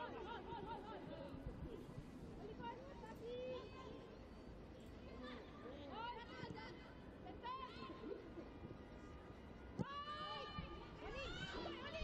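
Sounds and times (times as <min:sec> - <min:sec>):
low stadium background: 0:00.0 - 0:12.0.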